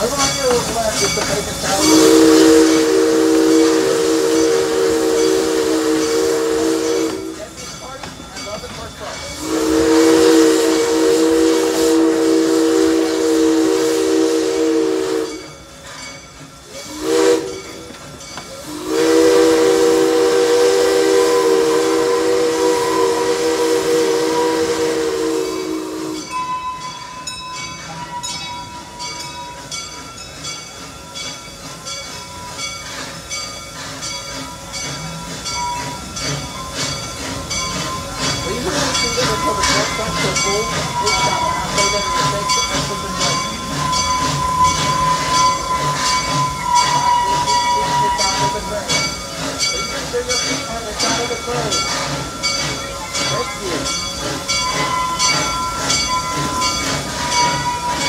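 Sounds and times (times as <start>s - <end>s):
regular clicking of train wheels: 0.0s - 58.0s
steam hiss: 0.0s - 58.0s
steam locomotive chime whistle: 0.0s - 58.0s.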